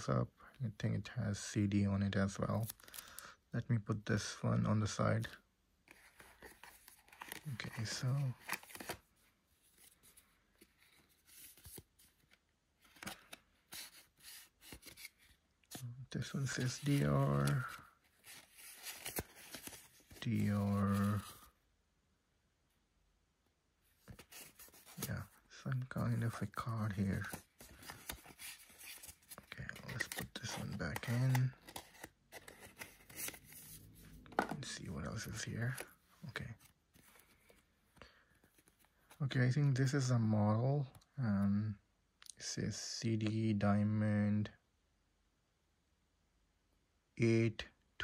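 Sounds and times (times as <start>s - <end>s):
paper cards rustling and tapping: 5.9s - 9.0s, 10.6s - 21.4s, 24.1s - 35.9s.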